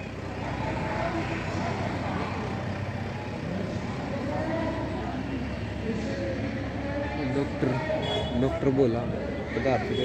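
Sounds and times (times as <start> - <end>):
distant voices: 0.0 - 10.0.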